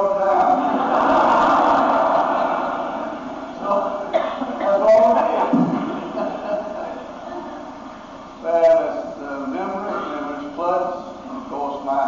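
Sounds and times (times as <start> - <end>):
congregation laughing: 0.0 - 8.3.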